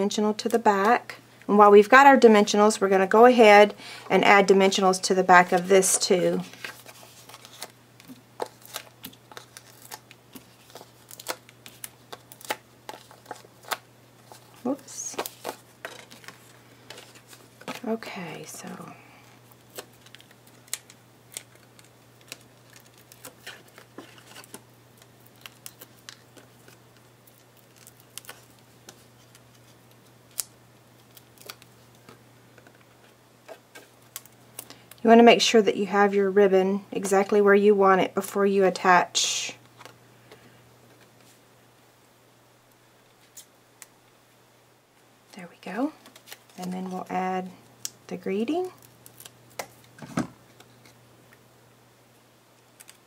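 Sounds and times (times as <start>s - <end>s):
faint steady hum: 0.0s - 53.0s
light paper rustles: 6.4s - 18.1s.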